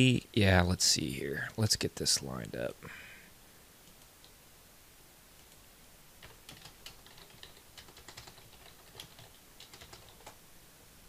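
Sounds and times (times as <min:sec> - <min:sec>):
faint keyboard typing: 0:03.8 - 0:04.4, 0:05.4 - 0:10.4.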